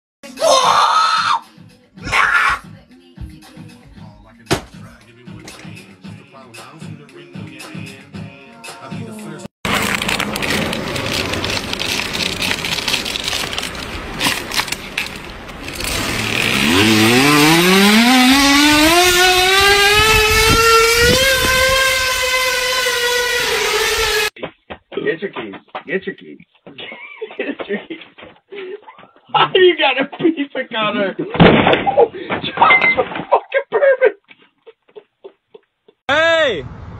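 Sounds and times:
loud high-pitched scream: 0:00.4 - 0:01.4, 0:02.0 - 0:02.6
music with a beat: 0:02.6 - 0:09.4
crackling clicks: 0:09.7 - 0:16.2
bottle buzzing against bicycle tyre: 0:15.7 - 0:24.3.

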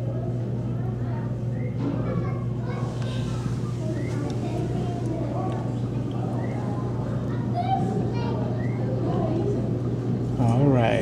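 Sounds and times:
background chatter of voices: 0:00.0 - 0:11.0
steady low hum: 0:00.0 - 0:11.0.

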